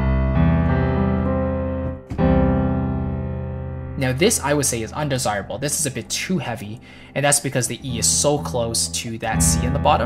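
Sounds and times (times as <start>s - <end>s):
piano chord: 0.0s - 10.0s.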